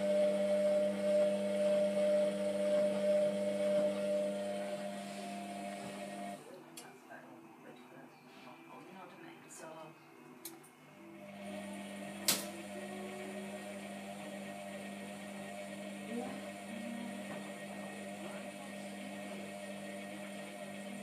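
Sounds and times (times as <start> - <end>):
washing machine motor humming: 0.0 - 6.5, 11.0 - 21.0.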